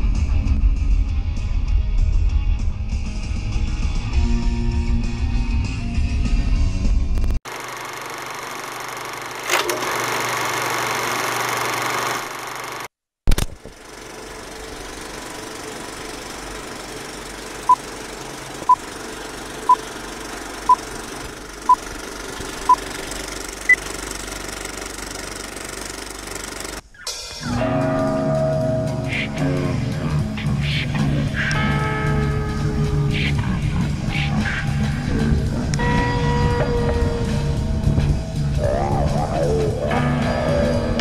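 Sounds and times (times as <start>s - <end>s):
film projector rattle with hiss: 7.5s - 12.9s, 13.7s - 26.8s.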